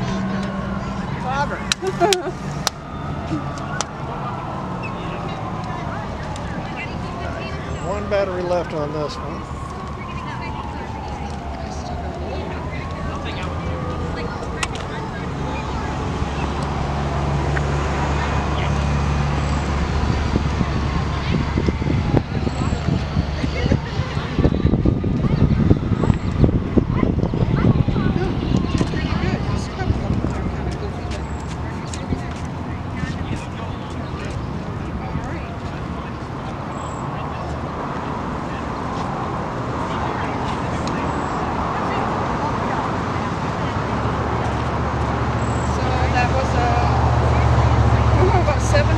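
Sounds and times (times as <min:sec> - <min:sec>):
outdoor traffic noise: 0:00.0 - 0:48.9.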